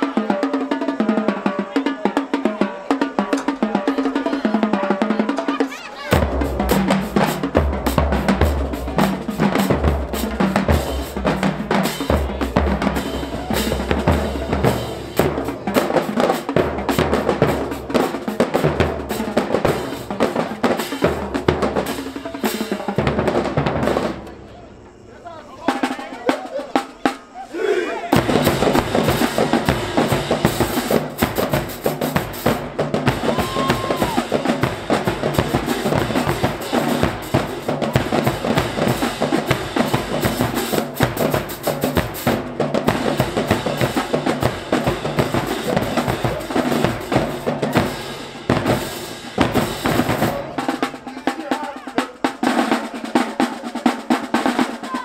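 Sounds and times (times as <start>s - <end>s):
snare drums: 0.0s - 25.0s, 25.6s - 55.0s
tenor drums: 0.0s - 55.0s
bass drums: 6.1s - 24.2s, 28.2s - 51.1s.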